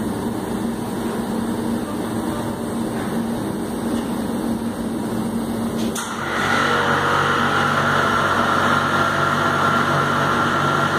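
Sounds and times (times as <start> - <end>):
vacuum pump hum with high whine: 0.0 - 10.9.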